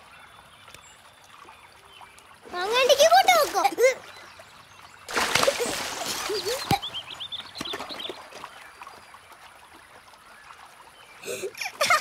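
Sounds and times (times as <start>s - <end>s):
birds chirping: 0.0s - 12.0s
stream water running: 0.0s - 12.0s
water splash: 5.1s - 6.9s.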